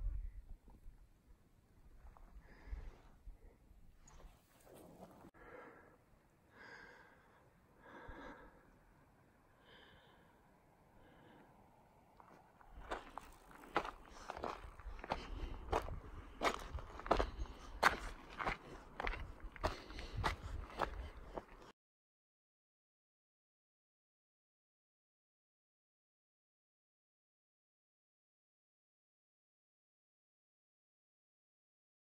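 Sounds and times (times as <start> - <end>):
footsteps crunching on gravel: 12.2 - 21.7.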